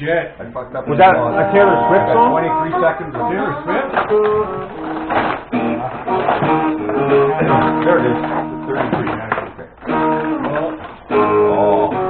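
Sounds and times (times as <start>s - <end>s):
acoustic guitar chords strummed: 0.9s - 12.0s.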